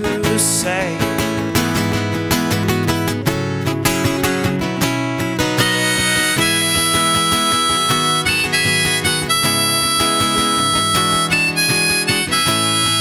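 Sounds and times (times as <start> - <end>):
acoustic guitar strumming: 0.0 - 13.0
harmonica playing: 5.4 - 13.0.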